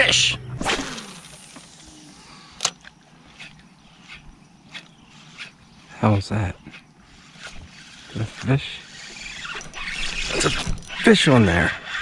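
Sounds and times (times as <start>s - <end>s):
faint reel ticks: 2.6s - 11.4s.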